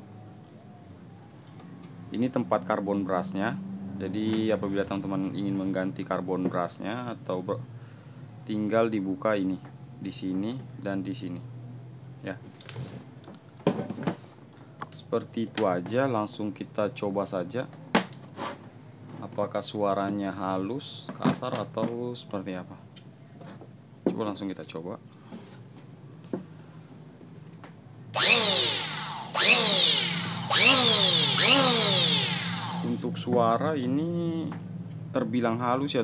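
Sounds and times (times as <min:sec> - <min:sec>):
electric planer motor whining: 0:28.2 - 0:33.0.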